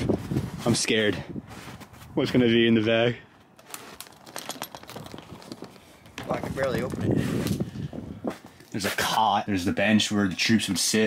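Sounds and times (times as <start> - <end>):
tarp rustling and crinkling: 3.6 - 7.6.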